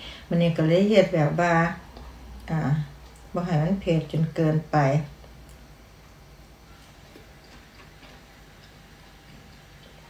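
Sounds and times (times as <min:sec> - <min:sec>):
low room hum: 0:00.0 - 0:10.0
chewing food: 0:06.7 - 0:10.0.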